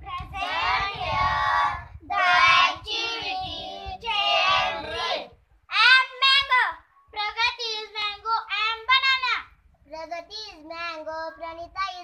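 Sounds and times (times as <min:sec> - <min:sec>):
young children singing: 0:00.1 - 0:05.3.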